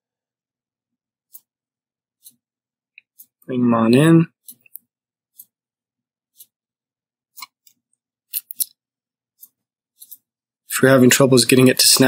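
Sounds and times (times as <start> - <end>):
computer mouse clicking: 4.4 - 5.6, 6.3 - 6.6, 7.3 - 8.8.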